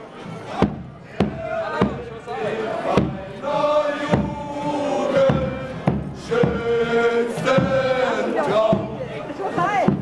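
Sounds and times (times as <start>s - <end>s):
voices: 0.0s - 10.0s
bass drum beating march rhythm: 0.2s - 10.0s.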